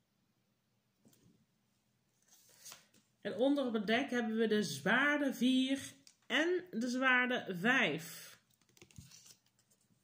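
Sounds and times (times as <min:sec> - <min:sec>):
cards rustling: 0:02.2 - 0:03.2, 0:08.5 - 0:10.0.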